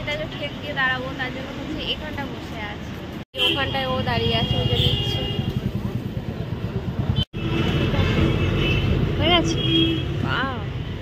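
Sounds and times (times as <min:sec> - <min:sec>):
people talking: 0:00.0 - 0:06.0
road traffic: 0:00.0 - 0:11.0.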